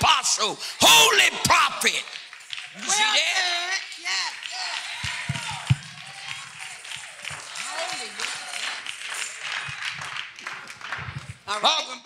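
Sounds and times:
congregation calling out responses: 0.0 - 9.9
scattered clapping: 0.8 - 11.9.

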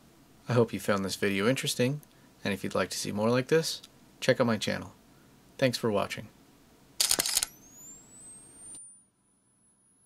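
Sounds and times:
camera shutter clicks: 7.0 - 7.6
camera flash charging whine: 7.0 - 10.0.

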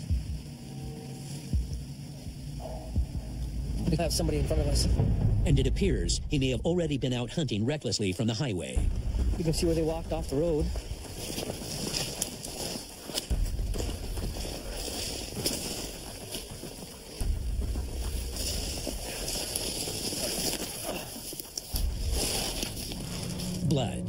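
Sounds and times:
branches and twigs rustling: 0.0 - 5.3, 8.0 - 24.0
wind rumble on microphone: 8.8 - 20.6
footsteps through snow: 8.8 - 24.0.

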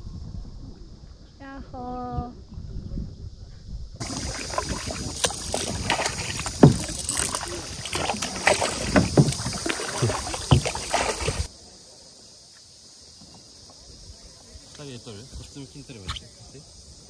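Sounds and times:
paddle blades splashing in water: 4.0 - 11.5
steady rush of water: 4.0 - 11.5
water slapping around kayak: 4.0 - 11.5.

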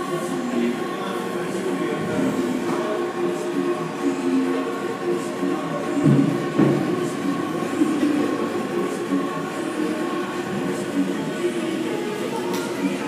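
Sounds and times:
droning gym hall noise: 0.0 - 13.0.

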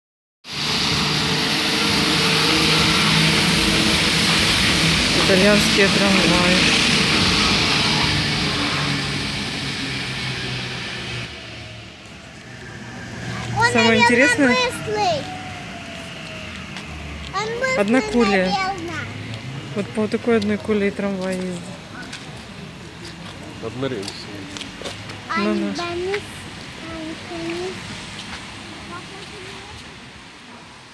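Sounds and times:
tram passing: 0.4 - 30.9
tyres hissing on wet road: 0.4 - 30.9.

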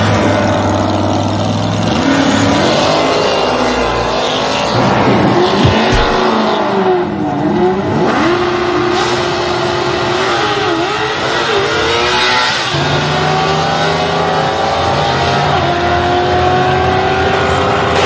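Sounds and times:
race car engines revving: 0.0 - 18.0.

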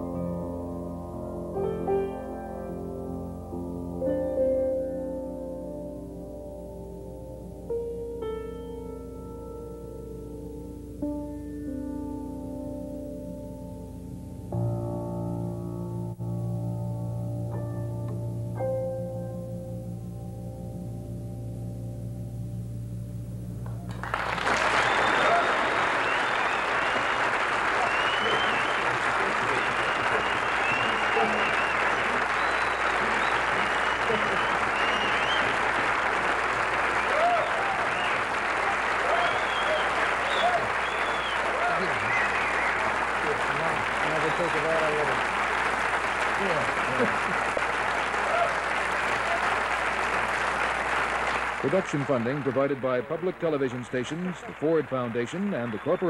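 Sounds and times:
audience applauding: 23.6 - 56.0
shouts and whistles: 24.5 - 35.6, 36.9 - 42.9, 48.2 - 49.6.

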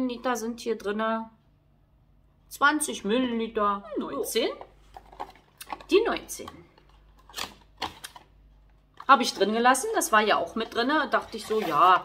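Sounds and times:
cardboard and plastic packaging handled: 4.6 - 12.0.

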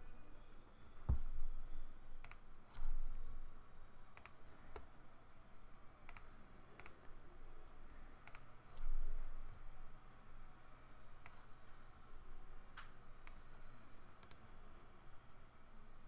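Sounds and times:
faint low hum: 0.0 - 16.0
computer mouse clicking: 2.2 - 3.2, 4.1 - 5.0, 6.0 - 7.2, 8.2 - 9.6, 11.2 - 11.5, 12.8 - 13.5, 14.2 - 14.4.

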